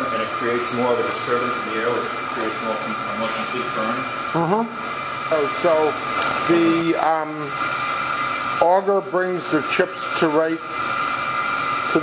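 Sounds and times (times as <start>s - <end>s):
speech: 0.0s - 4.0s, 5.3s - 7.5s, 8.6s - 10.7s
machine hum with high whine: 0.0s - 12.0s.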